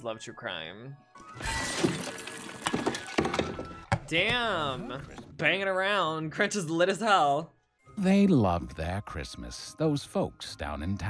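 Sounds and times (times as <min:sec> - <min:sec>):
film music: 0:00.0 - 0:11.0
household items crashing: 0:01.2 - 0:05.2
knocks and clatters: 0:01.8 - 0:04.4.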